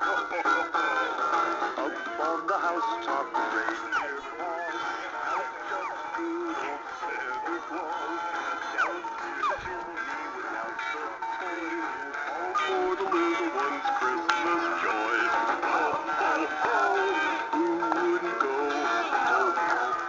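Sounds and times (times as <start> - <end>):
recorded singing over music: 0.0 - 20.0.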